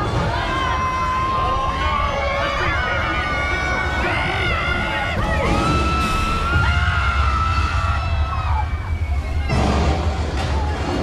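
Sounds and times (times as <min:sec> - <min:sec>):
riders screaming and yelling: 0:00.0 - 0:11.0
music: 0:04.2 - 0:11.0.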